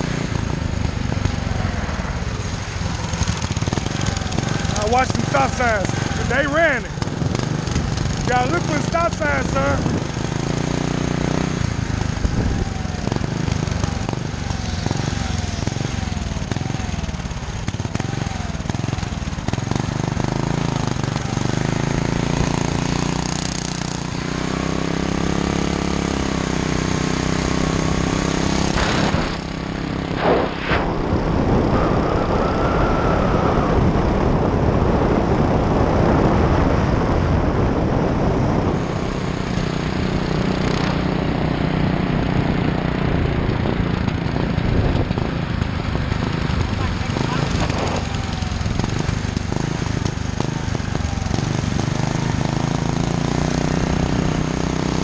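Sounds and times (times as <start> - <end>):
small engine running: 0.0 - 34.5, 38.4 - 55.0
wind noise on microphone: 9.6 - 21.4, 28.4 - 54.6.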